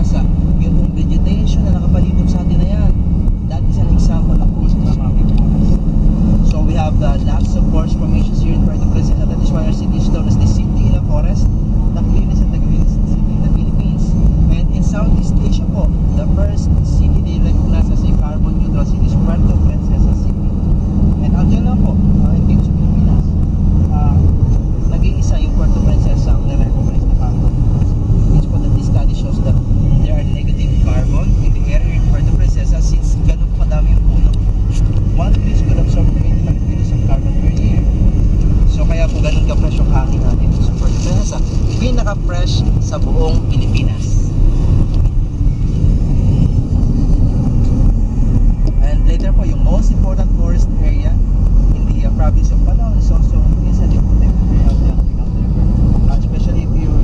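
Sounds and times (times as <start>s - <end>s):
people's voices: 0.0s - 57.0s
vehicle engine and road noise: 0.0s - 57.0s.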